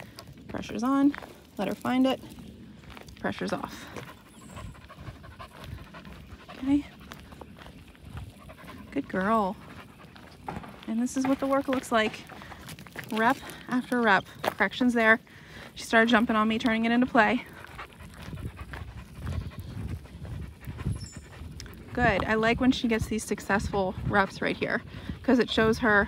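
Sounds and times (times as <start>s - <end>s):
dog panting softly: 3.7s - 10.7s, 17.2s - 26.0s.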